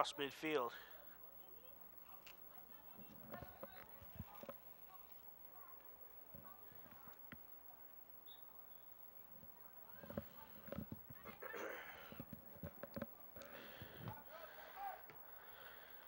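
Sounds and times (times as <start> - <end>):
distant players shouting: 13.6 - 15.9.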